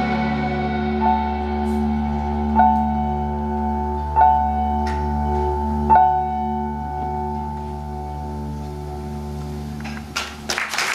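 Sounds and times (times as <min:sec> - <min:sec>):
sustained low drone: 0:00.0 - 0:10.5.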